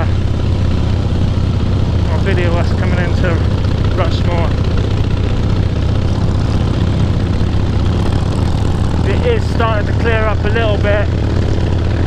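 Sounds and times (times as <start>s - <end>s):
motorcycle engine drone: 0.0s - 12.0s.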